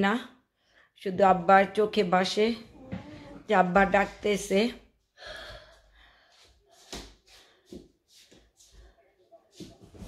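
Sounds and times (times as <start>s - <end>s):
woman breathing in: 5.2s - 6.6s.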